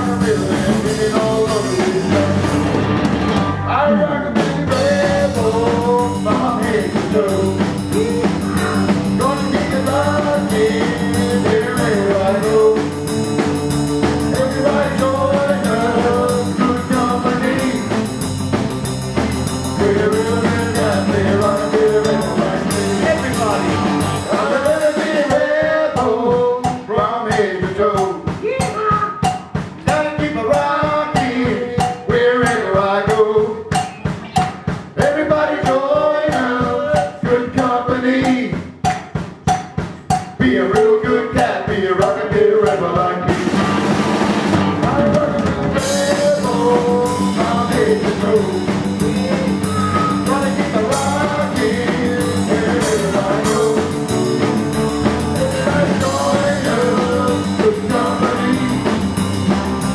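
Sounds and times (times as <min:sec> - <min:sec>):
live rock band playing: 0:00.0 - 0:59.9.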